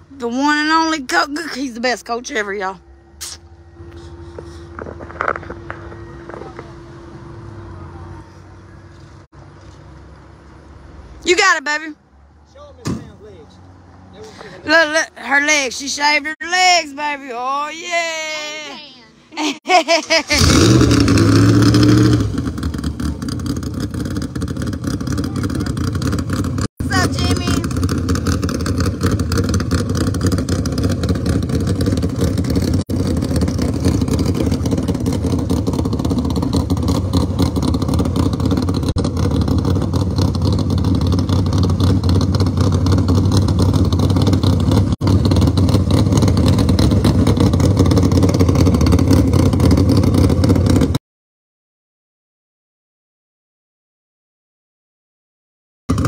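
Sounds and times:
car engine running loudly: 0:03.2 - 0:09.2, 0:20.3 - 0:51.0.

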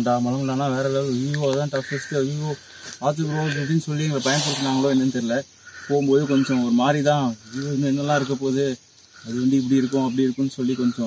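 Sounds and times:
high-pitched insect chirring: 0:00.0 - 0:11.0
man talking: 0:00.0 - 0:11.0.

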